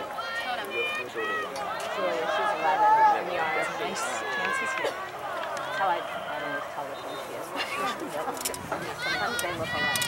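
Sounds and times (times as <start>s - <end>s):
overlapping voices talking: 0.0s - 10.0s.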